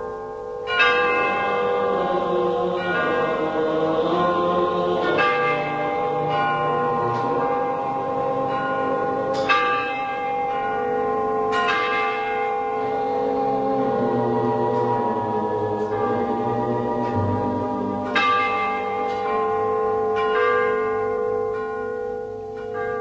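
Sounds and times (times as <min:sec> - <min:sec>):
held instrumental notes: 0:01.0 - 0:20.0.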